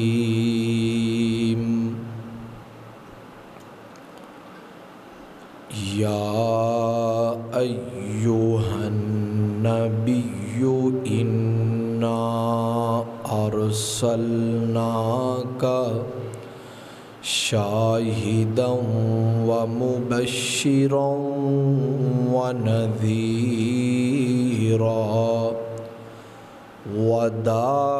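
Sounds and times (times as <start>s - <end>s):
man chanting religious recitation: 0.0s - 2.5s, 5.7s - 16.6s, 17.2s - 26.1s, 26.8s - 27.9s.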